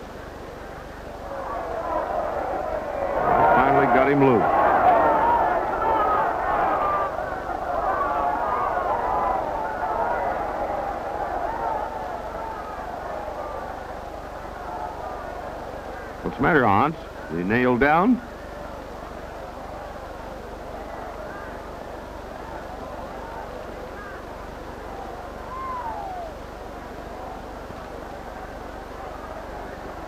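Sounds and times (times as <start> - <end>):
crowd shouting: 1.1 - 30.0.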